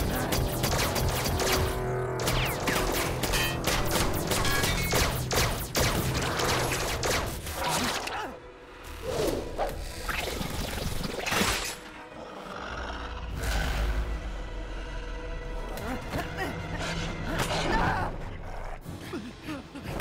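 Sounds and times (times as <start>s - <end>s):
dramatic cartoon score: 0.0s - 20.0s.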